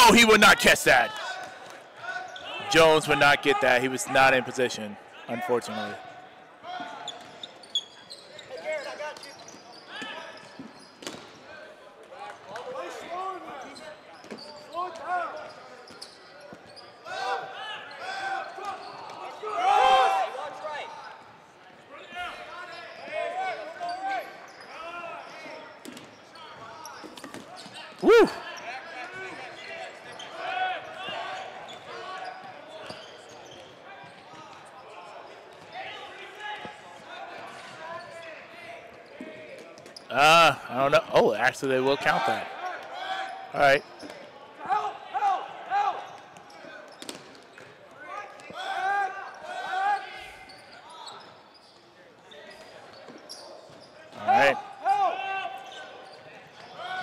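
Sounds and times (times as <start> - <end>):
players shouting: 0.0 - 1.6, 28.0 - 28.4.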